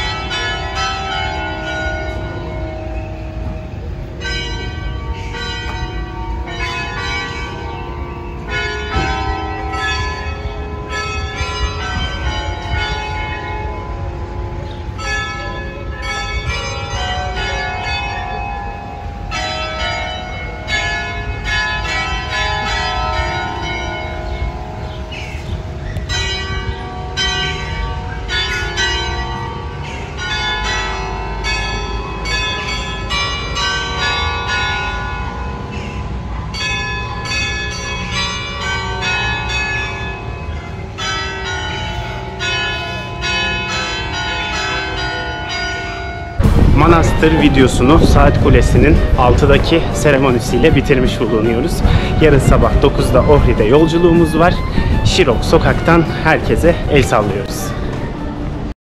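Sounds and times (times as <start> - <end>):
clock tower bells chiming a melody: 0.0 - 58.7.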